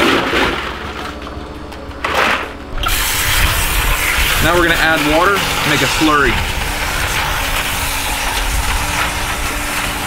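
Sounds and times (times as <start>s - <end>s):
steady rushing noise: 2.6s - 10.0s.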